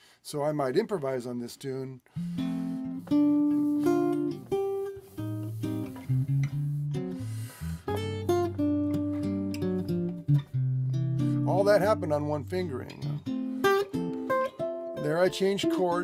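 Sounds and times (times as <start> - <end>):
jazz guitar chord-melody: 2.1 - 16.0.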